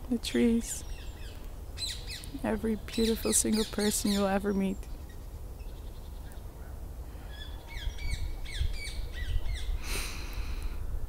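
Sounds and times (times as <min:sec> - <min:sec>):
bird chirping: 0:00.2 - 0:09.8.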